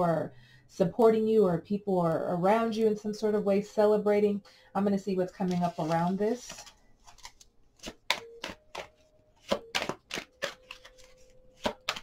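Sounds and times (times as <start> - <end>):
cards being shuffled by hand: 5.4 - 12.0.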